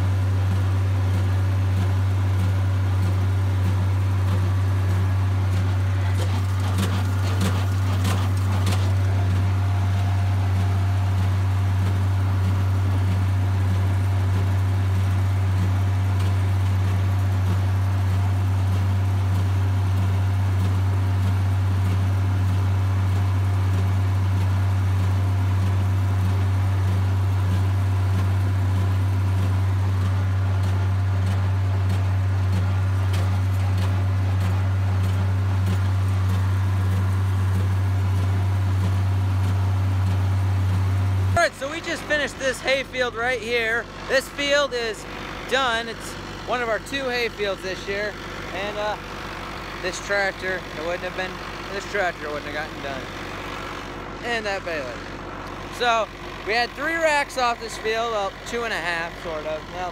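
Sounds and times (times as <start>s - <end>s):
tractor engine droning: 0.0s - 59.9s.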